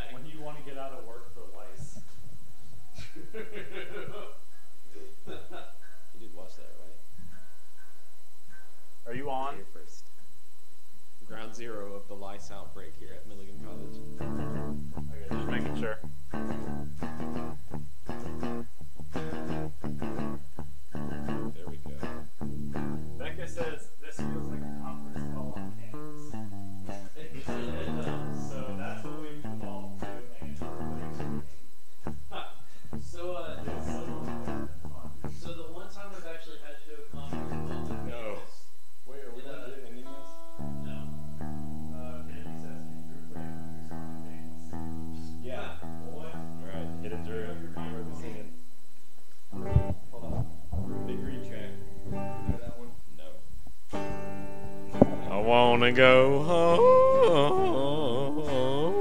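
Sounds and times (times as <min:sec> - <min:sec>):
voices: 0:03.0 - 0:07.5, 0:11.3 - 0:16.0, 0:23.2 - 0:31.4, 0:32.3 - 0:41.1, 0:55.0 - 0:59.0
guitar playing notes and chords: 0:13.6 - 0:32.3, 0:33.6 - 0:35.3, 0:37.3 - 0:38.2, 0:40.0 - 0:47.0, 0:49.5 - 0:52.6, 0:53.9 - 0:59.0.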